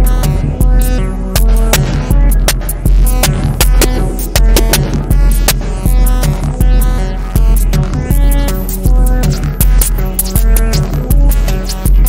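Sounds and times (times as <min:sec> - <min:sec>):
deep bass pulse: 0:00.0 - 0:12.0
sharp clicking percussion: 0:00.0 - 0:12.0.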